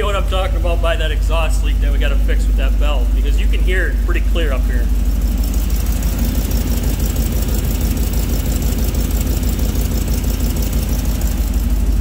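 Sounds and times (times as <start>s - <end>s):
engine idling: 0.0s - 12.0s
rapid ticking of exhaust leak: 0.0s - 12.0s.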